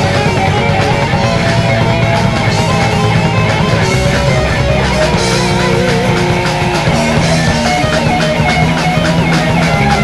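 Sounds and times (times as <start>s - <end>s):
distorted electric guitars: 0.0s - 10.0s
fast drums: 0.0s - 10.0s
wavering lead guitar line: 0.0s - 10.0s.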